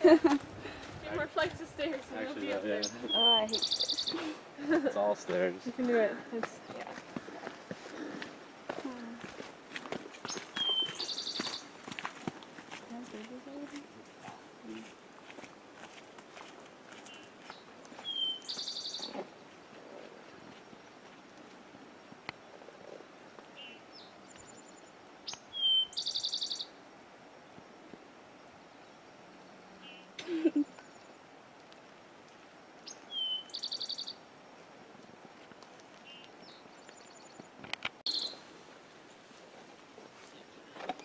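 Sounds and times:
songbird singing trill: 2.7s - 4.3s, 10.2s - 11.8s, 17.0s - 19.5s, 23.5s - 26.8s, 28.6s - 31.3s, 32.8s - 34.3s, 36.0s - 38.5s.

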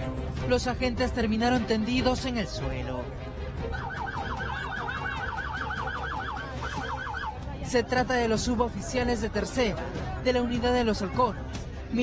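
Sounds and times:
electronic siren yelping: 3.7s - 7.4s.

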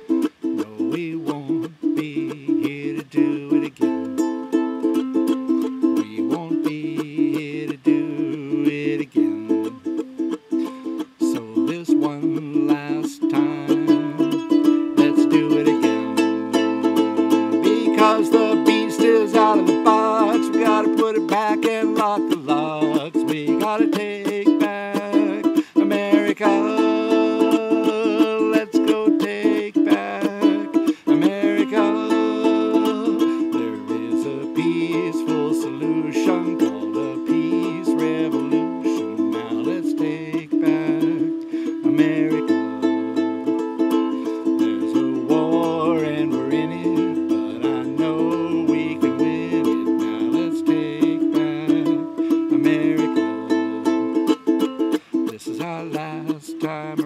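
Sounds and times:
ukulele strumming: 0.0s - 57.0s.

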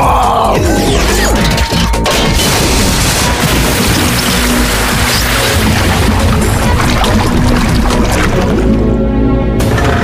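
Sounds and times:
action music: 0.0s - 10.0s
crash and impact sound effects: 2.0s - 8.8s.

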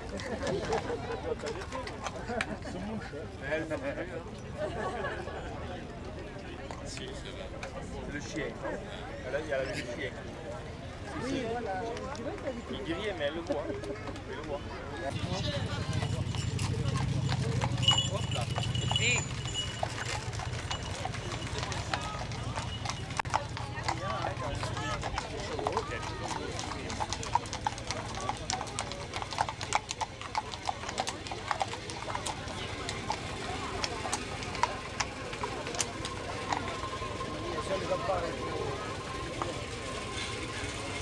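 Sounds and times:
horse hooves on pavement: 11.6s - 41.0s.

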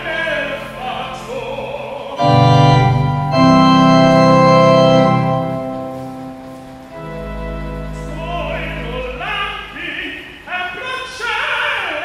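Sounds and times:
classical voice singing with vibrato: 0.0s - 5.1s, 6.9s - 12.0s
organ held chords: 0.0s - 10.4s.

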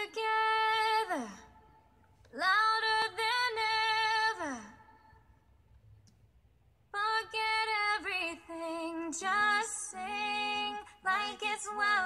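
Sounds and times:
woman singing: 0.0s - 5.2s, 6.9s - 12.0s.

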